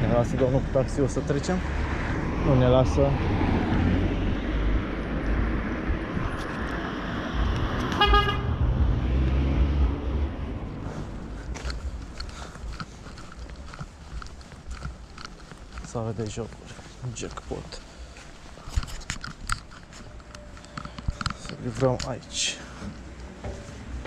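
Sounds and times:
traffic rumble: 0.0s - 24.0s
car running close by: 1.8s - 10.9s
short car horn toot: 8.0s - 8.5s
footsteps on pavement: 10.6s - 24.0s.

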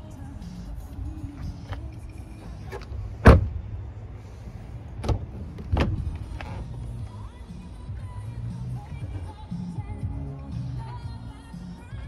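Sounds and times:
car door shutting: 2.4s - 3.8s, 5.0s - 7.2s.

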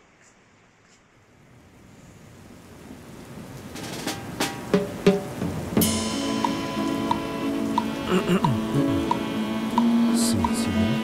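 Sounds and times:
heavy rain streaming off roof: 1.3s - 11.0s.

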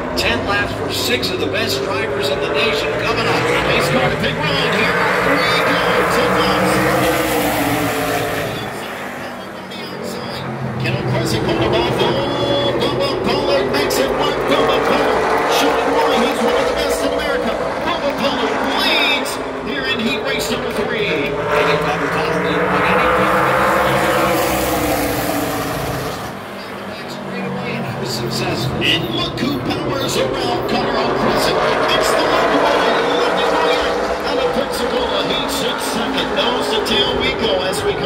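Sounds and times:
race car engines at full throttle: 0.0s - 38.0s.

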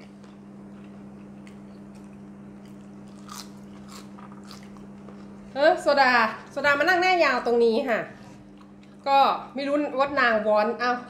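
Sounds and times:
chewing and crunching food: 0.0s - 5.6s, 8.1s - 9.2s
steady low hum: 0.0s - 11.0s.

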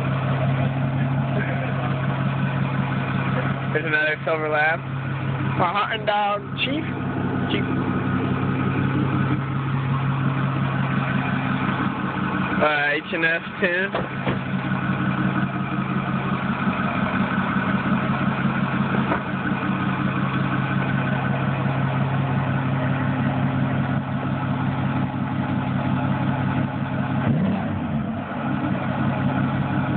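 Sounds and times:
diesel engine idling: 0.0s - 29.9s.

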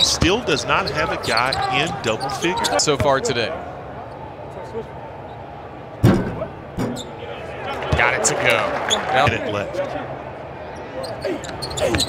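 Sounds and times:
basketball hitting the rim: 6.0s - 7.1s.

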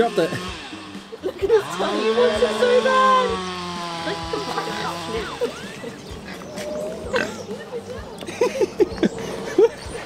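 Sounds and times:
people's voices in background: 0.0s - 10.0s
pig grunting: 6.2s - 7.5s.

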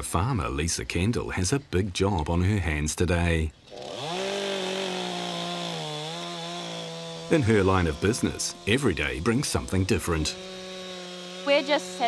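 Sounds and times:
chainsaw cutting wood: 3.6s - 12.0s
chainsaw running at high speed: 3.7s - 12.0s.

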